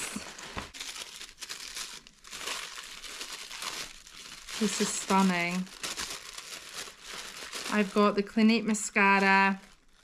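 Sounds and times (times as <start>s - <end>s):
tissue paper rustling: 0.0s - 10.0s.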